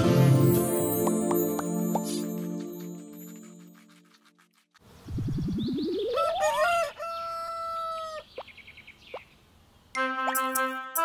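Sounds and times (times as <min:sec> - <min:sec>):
rising pitch sound effect: 0:05.1 - 0:06.6
rooster crowing: 0:06.1 - 0:08.3.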